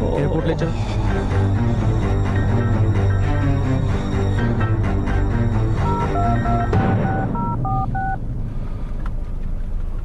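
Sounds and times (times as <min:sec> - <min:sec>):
phone keypad beeps: 0:05.9 - 0:08.2
car interior rumble: 0:05.9 - 0:10.0.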